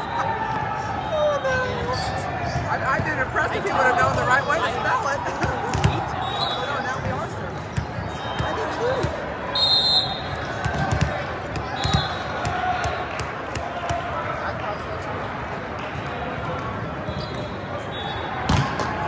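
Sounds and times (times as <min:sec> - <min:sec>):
voices chattering and calling out: 0:00.0 - 0:19.0
short high whistle: 0:09.6 - 0:10.3.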